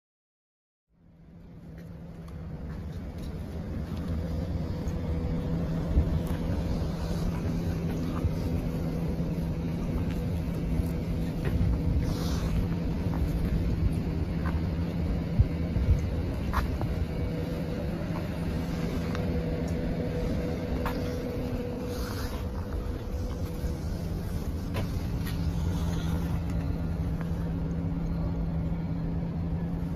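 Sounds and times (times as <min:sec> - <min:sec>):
low vehicle rumble: 0:00.9 - 0:29.9.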